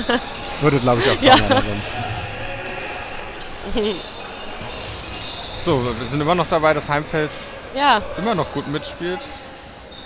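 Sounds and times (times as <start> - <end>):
echoing sports hall noise: 0.0 - 10.0.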